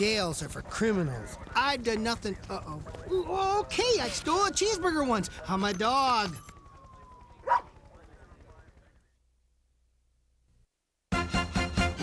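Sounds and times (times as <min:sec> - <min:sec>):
dog bark: 0:07.4 - 0:07.7.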